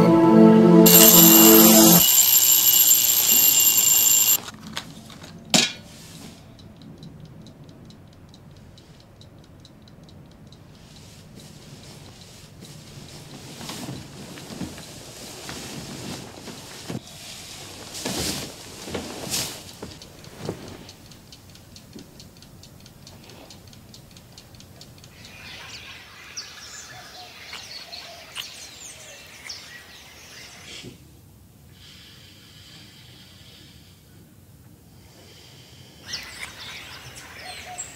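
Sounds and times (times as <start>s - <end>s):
bell alarm clock ringing: 0.8s - 4.4s
clock ticking: 0.9s - 4.4s, 6.6s - 11.0s, 20.0s - 25.1s.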